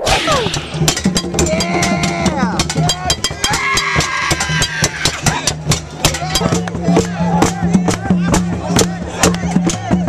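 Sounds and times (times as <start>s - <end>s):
bongos beaten fast: 0.0s - 10.0s
voices shouting: 0.0s - 10.0s.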